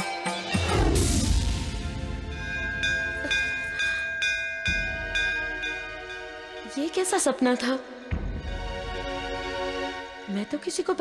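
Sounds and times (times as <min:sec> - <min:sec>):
low hum: 0:00.7 - 0:05.9
bell ringing: 0:02.2 - 0:07.2.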